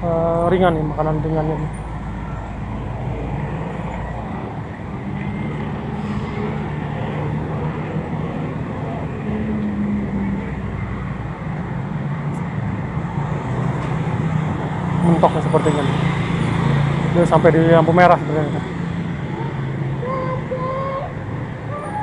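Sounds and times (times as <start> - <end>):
bus and car engines humming: 0.0 - 22.0
road noise: 0.0 - 22.0.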